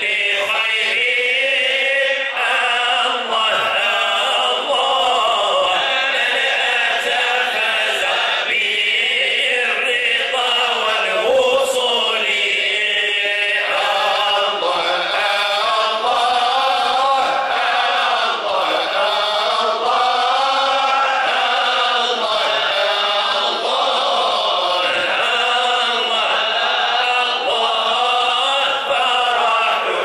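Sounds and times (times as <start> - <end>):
men chanting together: 0.0 - 30.0.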